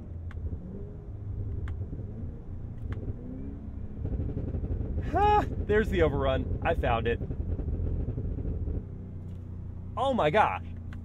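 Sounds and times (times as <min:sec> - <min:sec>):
low exhaust rumble: 0:00.0 - 0:11.0
exhaust pops: 0:04.0 - 0:09.5.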